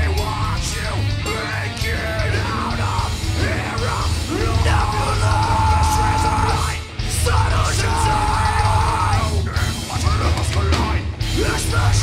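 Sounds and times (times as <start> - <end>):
person yelling vocals: 0.0 - 9.7
heavy rock band playing: 0.0 - 12.0.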